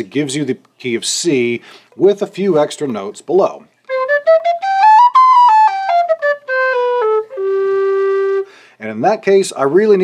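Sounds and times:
low whistle melody: 3.9 - 8.5.

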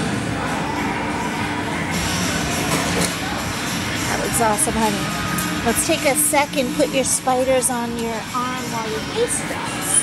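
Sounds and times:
background music: 0.0 - 10.0
din of busy game arcade: 0.0 - 10.0.

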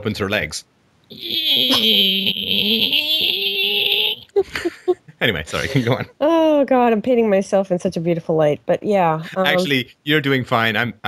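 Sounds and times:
high-pitched sound effect: 1.1 - 4.2
man laughing: 1.3 - 6.2.

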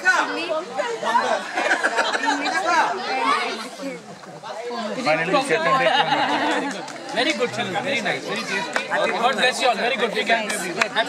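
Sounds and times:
group of people talking: 0.0 - 11.0.

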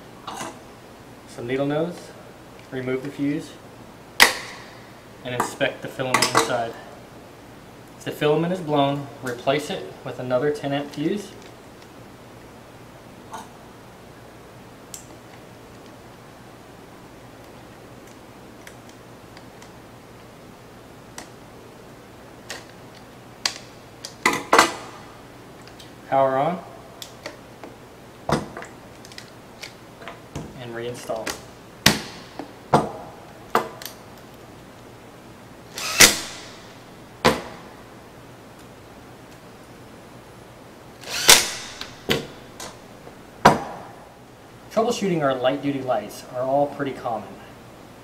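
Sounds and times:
cordless drill driving a screw: 35.7 - 36.5, 41.0 - 41.9.

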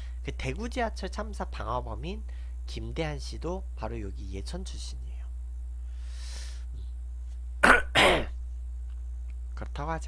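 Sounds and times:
man clearing his throat: 7.6 - 8.4.

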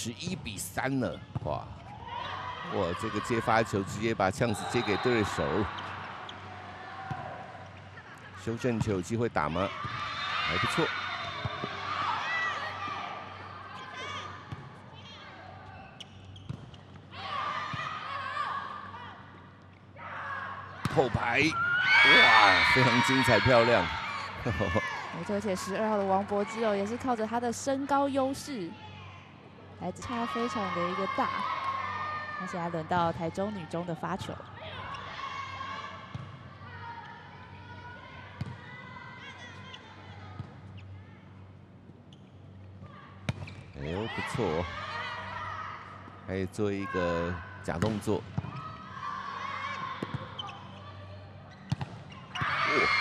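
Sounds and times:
players' voices: 0.0 - 16.0, 20.6 - 40.1
players calling out: 20.6 - 27.1
shoe squeaks: 50.3 - 52.9.

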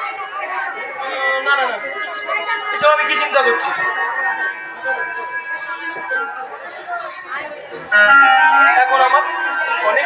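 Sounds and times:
faint music: 0.0 - 10.0
indistinct voices and chatter: 0.0 - 10.0
loud music: 1.5 - 10.0.

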